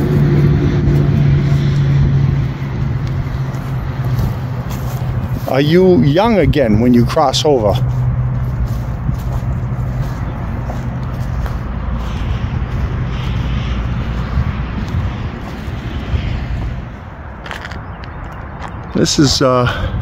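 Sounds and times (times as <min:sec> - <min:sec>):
vehicle engine running: 0:00.0 - 0:18.8.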